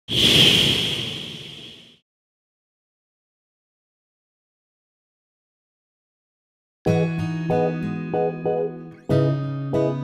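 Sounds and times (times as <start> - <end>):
whoosh: 0.1 - 2.0.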